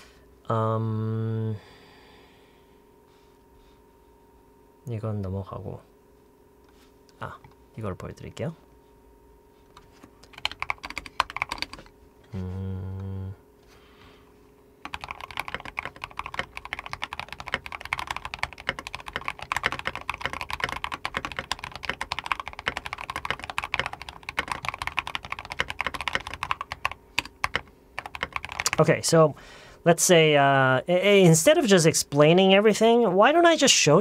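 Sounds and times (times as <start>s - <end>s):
fast typing on keyboard: 9.8s - 11.9s, 14.8s - 28.9s.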